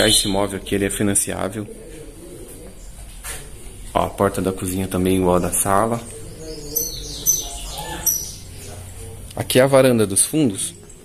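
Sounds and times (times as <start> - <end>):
dove cooing: 0.0 - 9.6.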